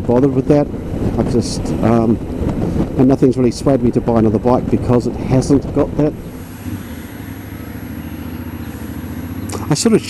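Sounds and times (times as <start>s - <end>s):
motorcycle engine running: 0.0s - 10.0s
road noise: 0.0s - 10.0s.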